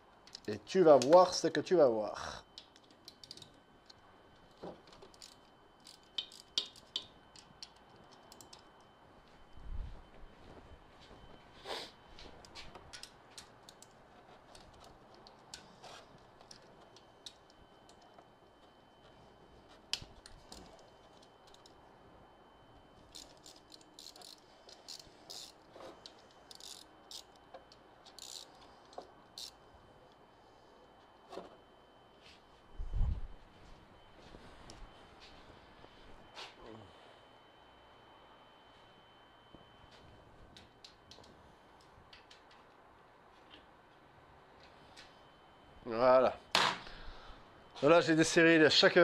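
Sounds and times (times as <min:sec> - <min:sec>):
hand tools clicking on metal: 0:05.1 - 0:08.6.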